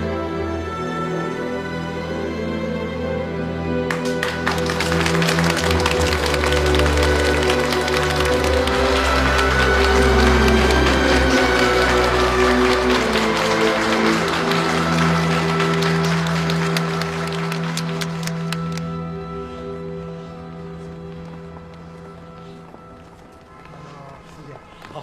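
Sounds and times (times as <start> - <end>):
background music with held notes: 0.0 - 25.0
crowd applauding: 3.8 - 19.1.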